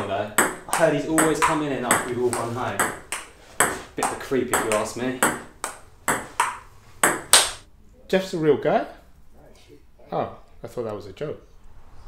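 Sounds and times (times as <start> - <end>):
table tennis ball pocks: 0.4 - 7.6.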